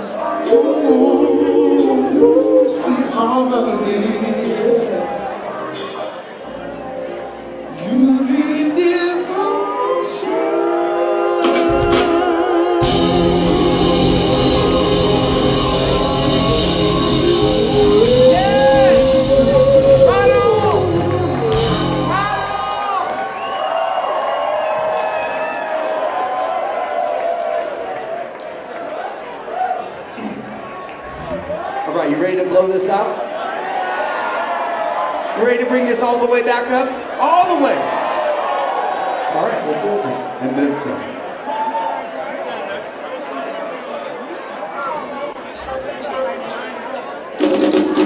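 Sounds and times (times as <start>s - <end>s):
funk band playing: 0.0s - 8.5s, 11.2s - 23.1s, 47.4s - 48.0s
concert audience chattering: 0.0s - 48.0s.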